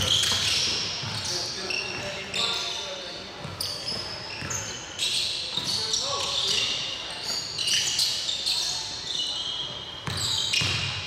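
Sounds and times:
sneakers squeaking: 0.0 - 11.0.

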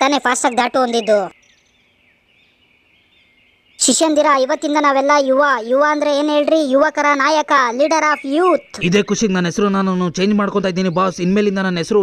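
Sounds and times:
person speaking: 0.0 - 1.4, 3.8 - 12.0
faint chirps: 0.0 - 12.0.

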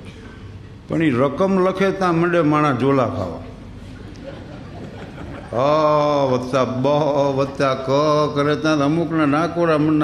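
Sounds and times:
man chanting into a microphone: 5.6 - 10.0.

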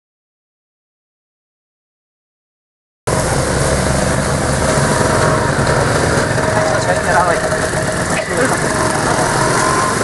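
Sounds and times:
small motorcycle engines running: 3.1 - 10.0.

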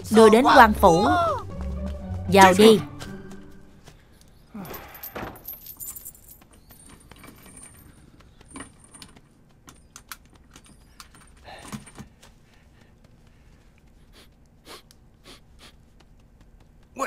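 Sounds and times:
keys and chain jangling: 4.6 - 12.1.

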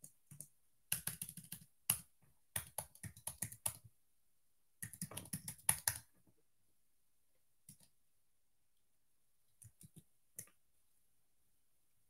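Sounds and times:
computer keyboard typing: 0.0 - 3.8, 4.8 - 6.1, 9.6 - 10.5.

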